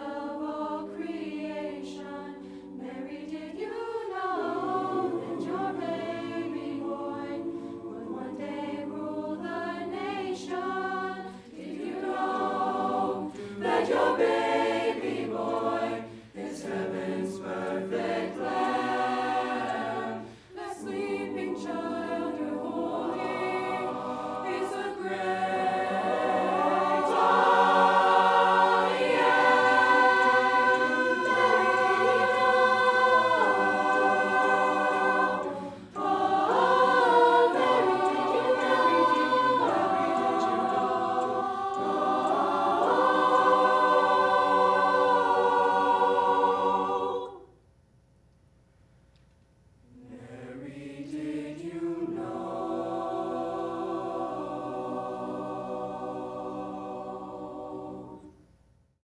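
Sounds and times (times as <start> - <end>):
choir singing unaccompanied: 0.0 - 47.6, 49.9 - 58.4.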